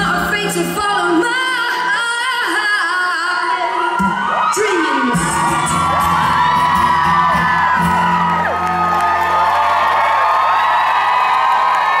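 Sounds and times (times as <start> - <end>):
audience whooping and cheering: 3.6 - 12.0.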